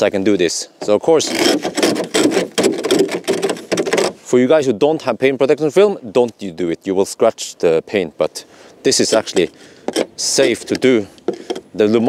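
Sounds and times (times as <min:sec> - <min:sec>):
plastic ice scraper scraping frost: 0:01.0 - 0:04.3, 0:09.0 - 0:11.8.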